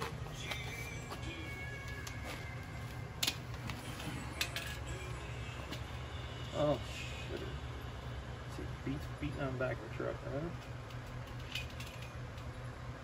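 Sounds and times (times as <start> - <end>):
hand tools and metal parts clicking: 3.2 - 5.0, 10.6 - 12.6.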